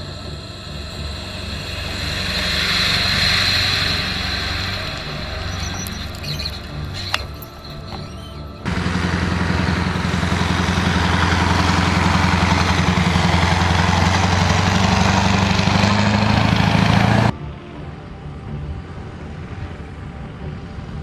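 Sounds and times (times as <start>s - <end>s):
heavy truck engine droning: 0.0s - 21.0s.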